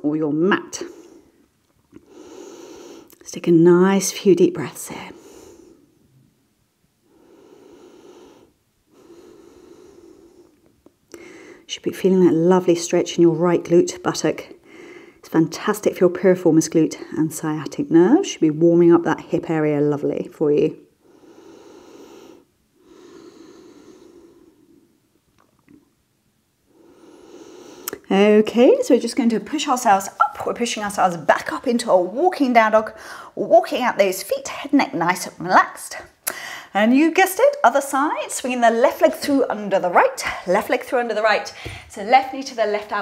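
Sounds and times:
woman breathing deeply: 2.0 - 3.1, 5.1 - 6.1, 7.0 - 11.7, 14.6 - 15.2, 20.9 - 25.1, 26.6 - 28.0, 33.0 - 33.4, 36.2 - 36.7.

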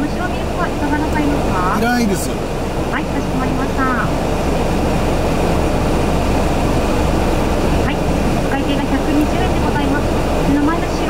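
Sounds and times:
faint voices: 0.0 - 4.2
cars idling and passing: 0.0 - 11.0.

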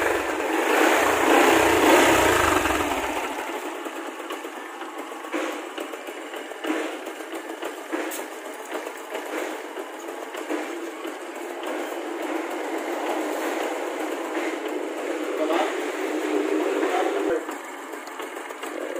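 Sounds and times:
motorcycle engine running: 0.0 - 18.9.

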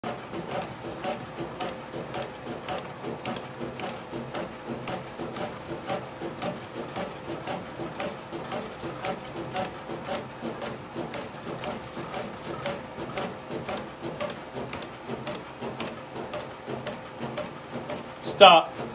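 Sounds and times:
bat rolling machine clicking: 0.0 - 18.9.

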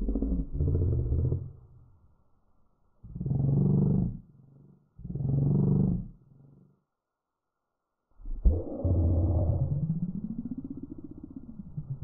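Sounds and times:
deep drawn-out pitched sounds: 8.3 - 12.0.

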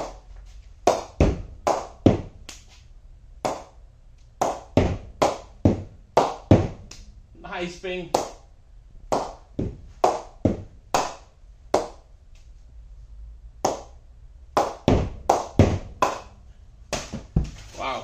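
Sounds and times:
ball knocking on cricket bat: 1.0 - 2.4, 4.5 - 6.9, 10.4 - 10.7.

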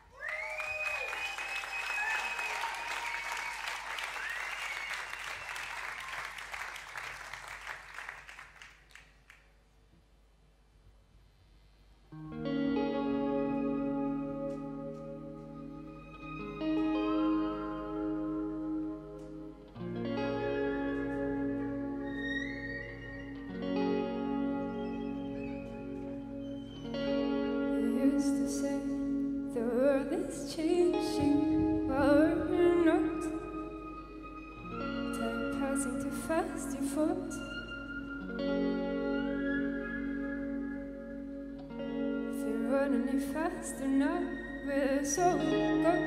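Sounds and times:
audience applause: 0.0 - 9.4
whistles: 0.1 - 6.3, 20.6 - 23.5, 39.2 - 41.4.

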